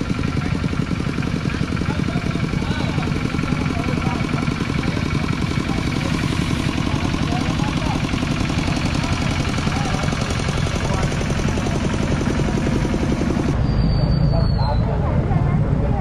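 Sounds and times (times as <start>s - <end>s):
diesel tractor engine chugging: 0.0s - 16.0s
low smooth vehicle rumble: 0.0s - 16.0s
voices: 0.0s - 16.0s.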